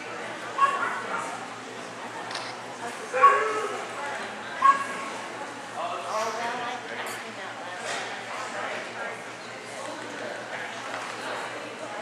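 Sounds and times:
murmur of voices in a hall: 0.0 - 12.0
dog barking: 4.6 - 4.9.

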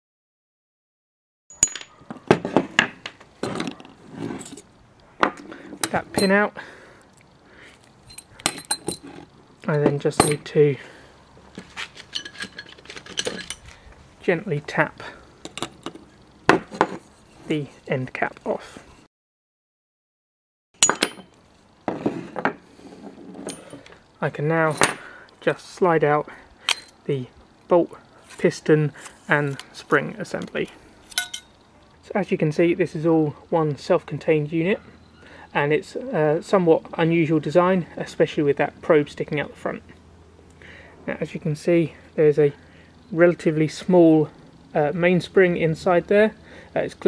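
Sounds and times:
metal clinks: 1.5 - 2.0, 8.0 - 9.2, 12.0 - 13.7, 20.8 - 21.4, 31.1 - 31.6.

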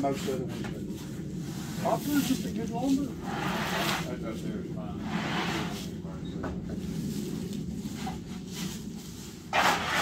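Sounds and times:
wooden board scraping on boards: 9.5 - 10.0.

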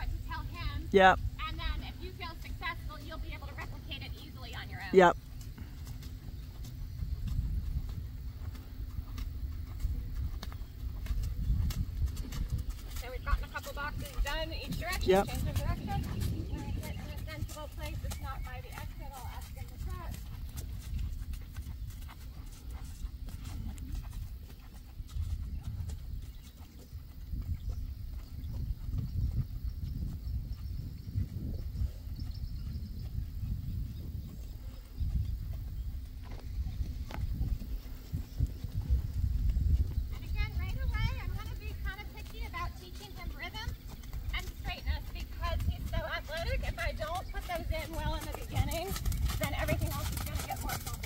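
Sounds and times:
horse hooves trotting on sand: 0.0 - 51.0.

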